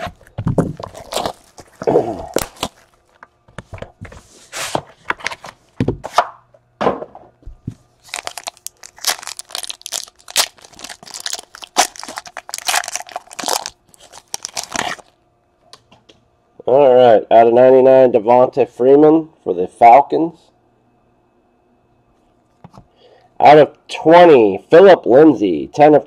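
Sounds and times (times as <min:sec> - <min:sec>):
foil wrapper tearing and crinkling: 0:00.0 - 0:03.2, 0:08.0 - 0:15.2.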